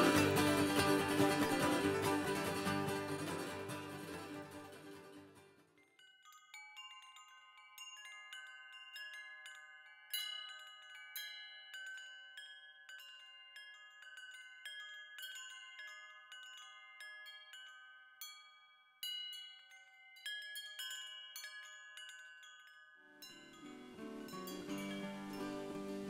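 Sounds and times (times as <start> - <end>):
wind chimes ringing: 0.0 - 5.1, 5.8 - 26.0.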